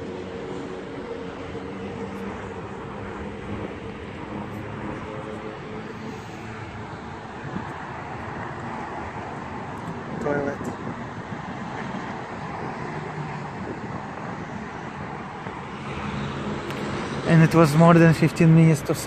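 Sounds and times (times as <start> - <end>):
car road and engine noise: 0.0 - 19.0.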